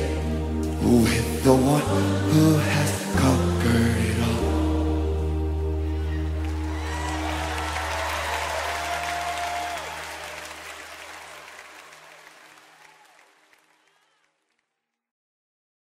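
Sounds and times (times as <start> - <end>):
audience applause: 6.0 - 14.6.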